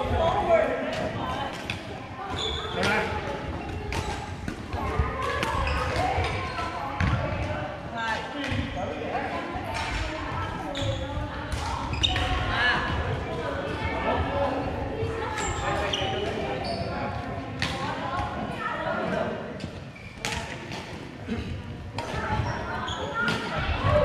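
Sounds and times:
voices in hall: 0:00.0 - 0:24.0.

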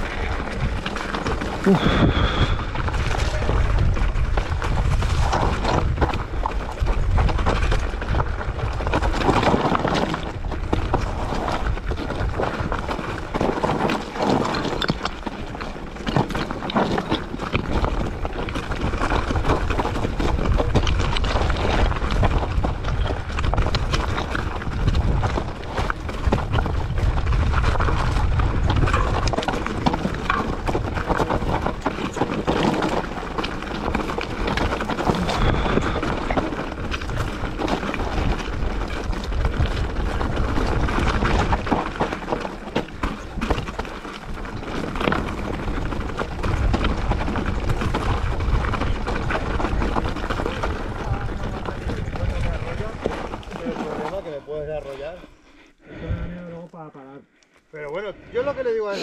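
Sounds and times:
bike tyres clattering over stones: 0:00.0 - 0:56.1
low rumble: 0:01.6 - 0:08.6.

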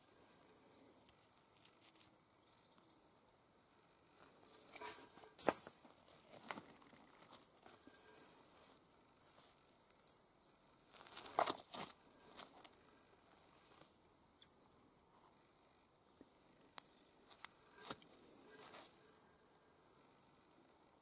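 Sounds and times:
rocks knocking and scraping: 0:10.9 - 0:12.7.

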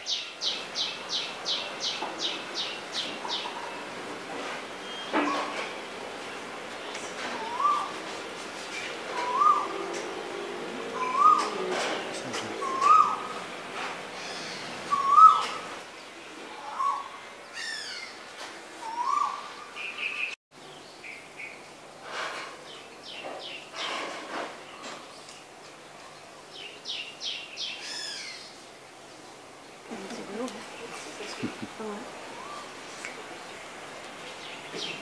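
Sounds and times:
bird call rising in pitch: 0:09.2 - 0:10.0, 0:10.9 - 0:11.6, 0:12.6 - 0:13.4.

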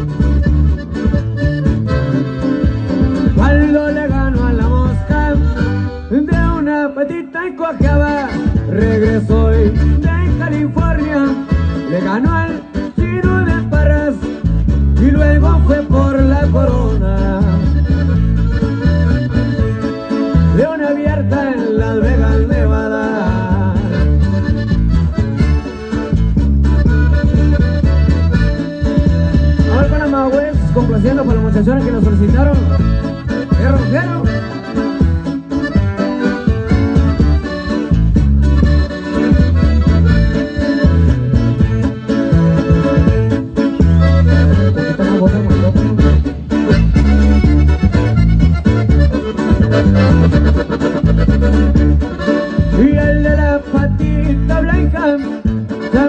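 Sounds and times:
steady low beat: 0:00.0 - 0:06.7, 0:07.8 - 0:56.0
button accordion melody: 0:00.0 - 0:56.0
electric bass: 0:00.0 - 0:56.0
strummed acoustic guitar: 0:00.0 - 0:56.0.

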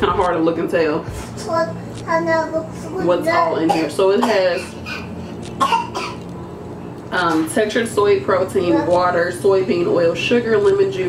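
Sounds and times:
low steady hum: 0:00.0 - 0:11.0
woman clearing her throat: 0:03.7 - 0:05.0, 0:05.6 - 0:06.2.

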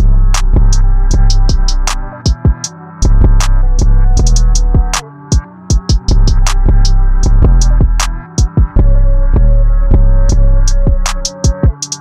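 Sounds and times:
deep bass notes: 0:00.0 - 0:02.3, 0:02.9 - 0:05.0, 0:05.8 - 0:11.8
hi-hats: 0:00.0 - 0:08.9, 0:09.9 - 0:12.0
melody: 0:00.0 - 0:12.0.

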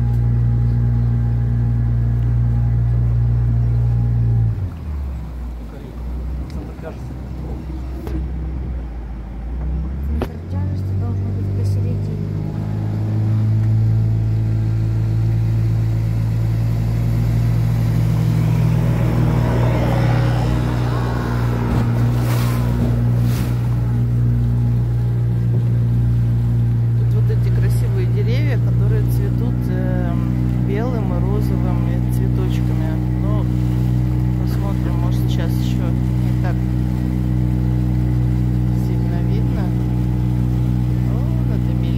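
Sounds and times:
small boat motor: 0:00.0 - 0:41.9.

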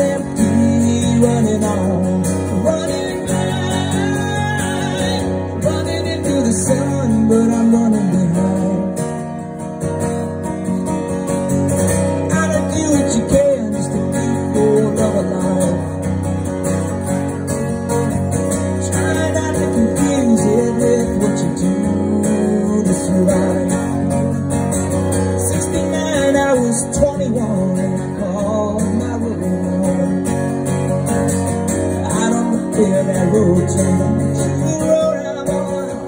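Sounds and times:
acoustic guitar strumming: 0:00.0 - 0:36.0.

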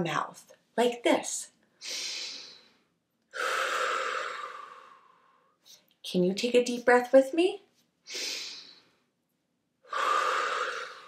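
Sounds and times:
woman inhaling through nose: 0:01.8 - 0:05.5, 0:08.1 - 0:09.0, 0:09.9 - 0:11.0
woman exhaling through mouth: 0:03.3 - 0:05.2, 0:09.9 - 0:11.0.

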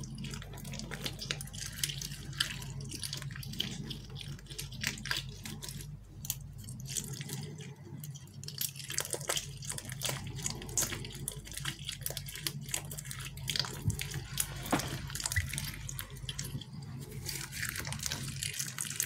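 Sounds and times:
foam squishy squelching: 0:00.0 - 0:19.0.

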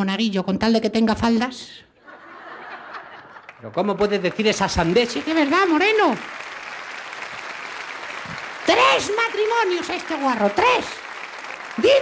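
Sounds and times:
studio audience applauding: 0:02.7 - 0:12.0.

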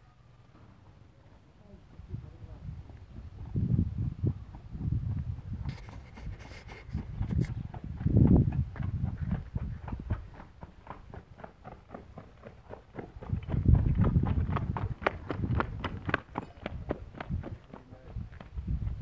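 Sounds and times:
horse hoofbeats on dirt: 0:01.8 - 0:19.0.

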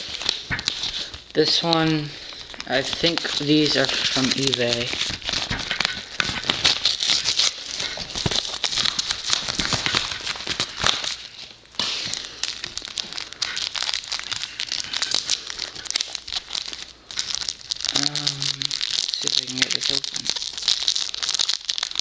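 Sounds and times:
envelope and paper crinkling: 0:00.0 - 0:22.0.

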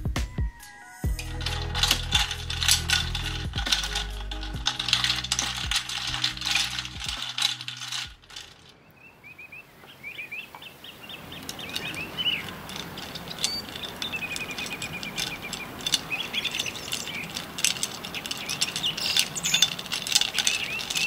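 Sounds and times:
ice cubes clinking in glass: 0:01.2 - 0:08.7, 0:11.5 - 0:21.0
small birds chirping: 0:08.3 - 0:21.0.

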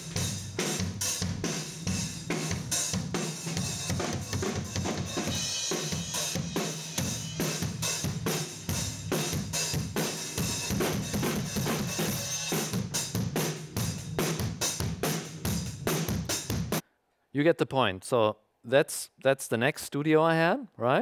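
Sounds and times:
acoustic drum kit groove: 0:00.0 - 0:16.8.

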